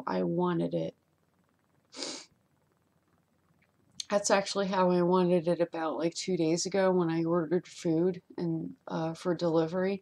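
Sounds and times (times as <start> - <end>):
woman's breathy sniff or exhale: 1.9 - 2.3.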